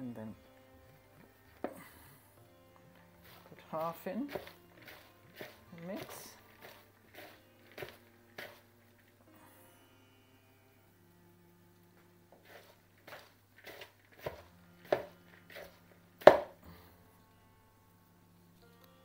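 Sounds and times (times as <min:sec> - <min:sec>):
vegetables rustling and squelching in bowl: 0:02.9 - 0:09.3, 0:12.3 - 0:16.6.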